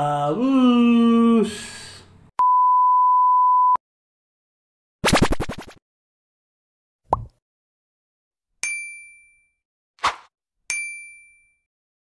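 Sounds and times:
bright bell-like ding: 0:10.7 - 0:11.6.

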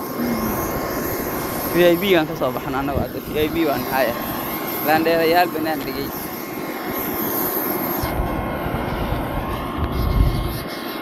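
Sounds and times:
aircraft noise: 0:00.0 - 0:11.0
faint steady whine: 0:00.0 - 0:11.0
wind rumble on microphone: 0:00.0 - 0:11.0.

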